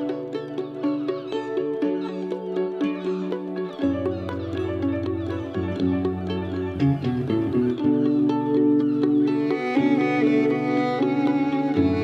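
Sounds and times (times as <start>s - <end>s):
violin playing quick notes: 0.0s - 12.0s.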